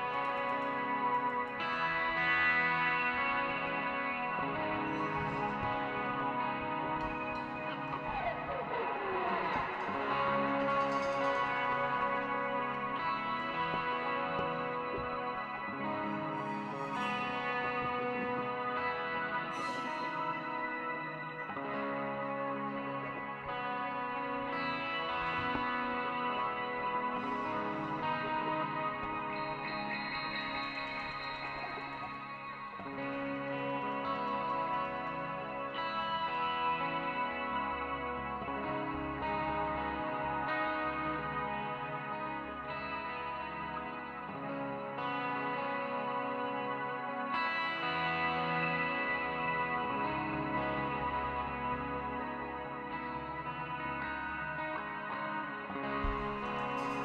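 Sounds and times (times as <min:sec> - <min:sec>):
electric bass guitar: 0:00.0 - 0:57.0
electric guitar ringing notes: 0:00.0 - 0:57.0.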